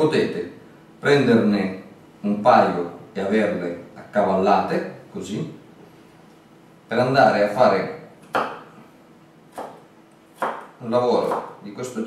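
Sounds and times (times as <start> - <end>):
knife chopping on plastic board: 8.2 - 8.7, 9.5 - 11.6.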